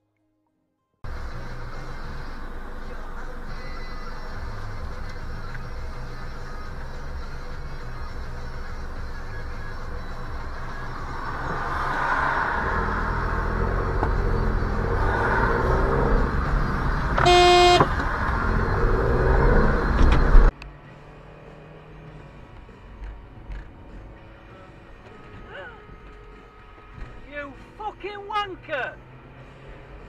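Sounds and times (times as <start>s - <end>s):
traffic noise: 1.0s - 30.0s
car horn honk: 17.1s - 18.2s.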